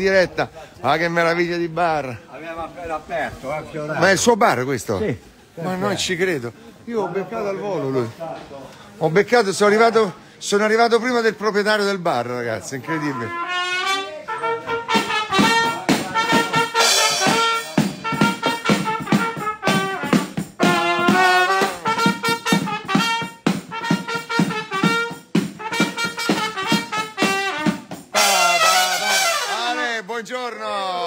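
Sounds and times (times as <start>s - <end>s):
brass horn melody: 12.9s - 29.9s
drum kit beat: 14.5s - 29.8s
cymbals ringing: 14.8s - 29.8s.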